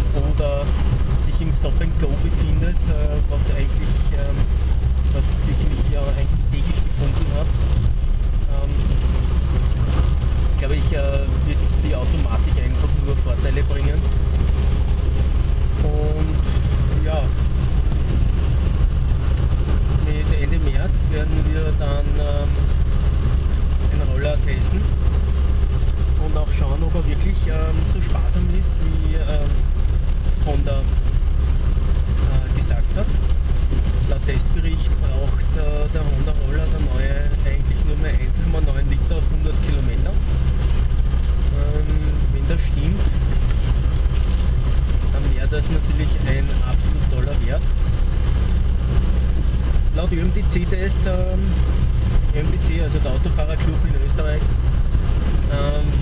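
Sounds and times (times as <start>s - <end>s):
car engine rumble: 0.0s - 56.0s
tyres on wet road: 0.0s - 56.0s.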